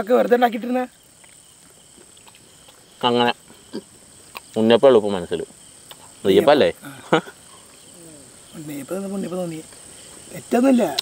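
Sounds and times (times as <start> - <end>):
crickets chirring: 0.0 - 11.0
men talking and laughing: 1.7 - 10.9.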